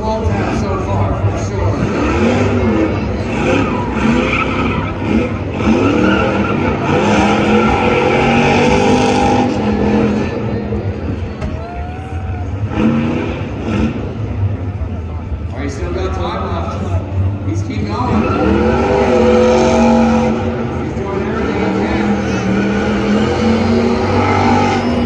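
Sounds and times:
car engine revving hard: 0:01.2 - 0:11.0, 0:12.6 - 0:14.6, 0:17.8 - 0:25.0
tyres squealing on pavement: 0:17.8 - 0:25.0.

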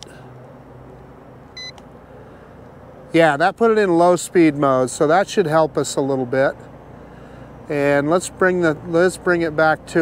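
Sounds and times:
short electronic beep: 0:01.6 - 0:01.8.

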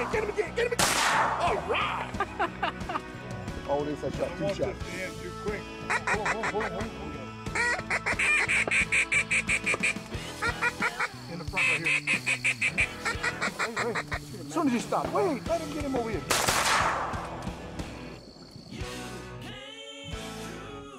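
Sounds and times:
duck call quacking: 0:05.8 - 0:14.4.

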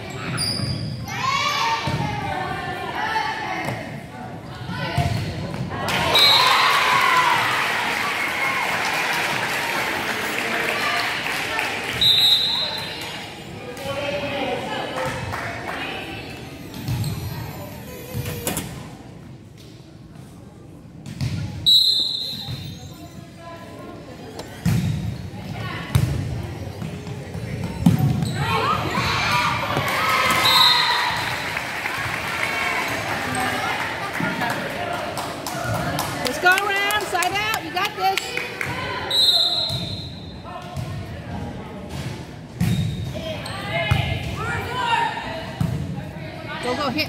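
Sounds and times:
players shouting and cheering: 0:05.7 - 0:13.0, 0:28.0 - 0:39.2
shrill whistle blasts: 0:12.0 - 0:12.9, 0:21.6 - 0:22.8, 0:30.4 - 0:31.3, 0:39.1 - 0:40.3.

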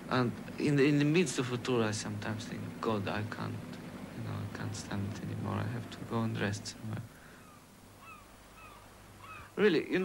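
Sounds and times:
faint bird calls: 0:07.1 - 0:09.6.

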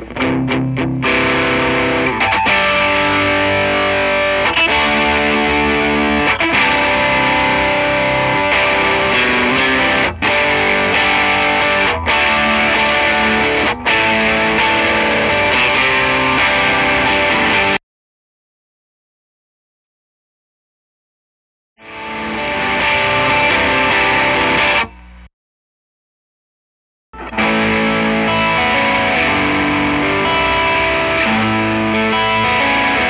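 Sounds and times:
distorted electric guitar riff: 0:00.0 - 0:17.8, 0:21.8 - 0:25.3, 0:27.2 - 0:33.0.

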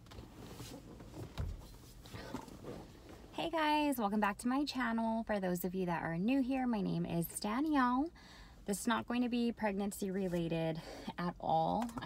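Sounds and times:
shuffling and handling noises: 0:00.0 - 0:03.3.

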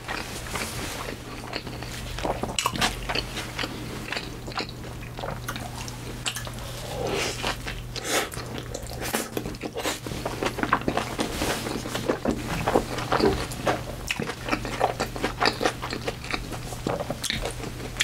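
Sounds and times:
wet squishy chewing: 0:00.1 - 0:18.0.

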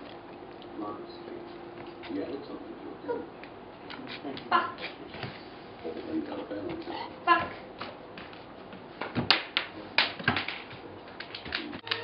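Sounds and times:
dog claws clicking on hardwood floor: 0:09.0 - 0:11.8.

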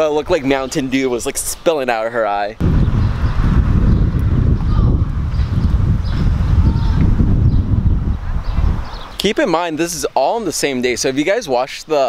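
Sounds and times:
wind buffeting microphone: 0:02.6 - 0:09.6.

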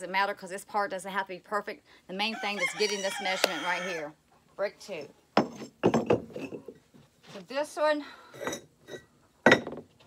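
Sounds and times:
firebrick clinking on metal table: 0:08.4 - 0:09.8.

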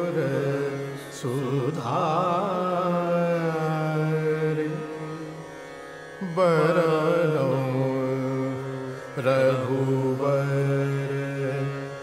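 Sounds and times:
man singing wordlessly: 0:00.0 - 0:05.4, 0:06.2 - 0:12.0.

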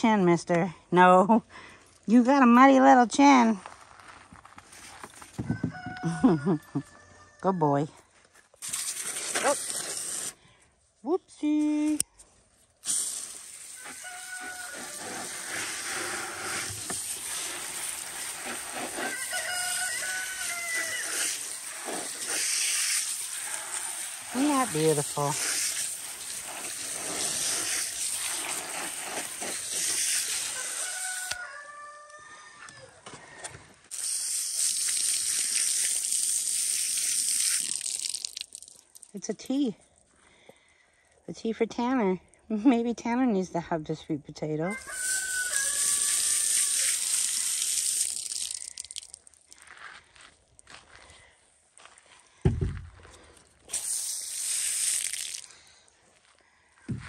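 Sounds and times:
hose nozzle spraying water: 0:08.6 - 0:10.4, 0:12.8 - 0:31.4, 0:33.9 - 0:39.1, 0:44.8 - 0:49.6, 0:53.7 - 0:55.6.

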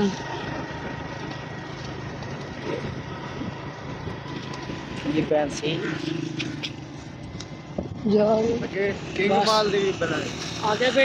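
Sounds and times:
motorcycle engine hum: 0:00.0 - 0:11.0
road and wind noise: 0:00.0 - 0:11.0.

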